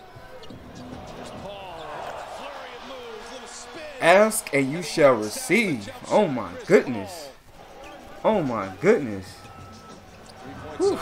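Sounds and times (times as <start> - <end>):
arena crowd noise: 0.0 - 11.0
commentator talking: 2.3 - 7.4, 8.2 - 9.4.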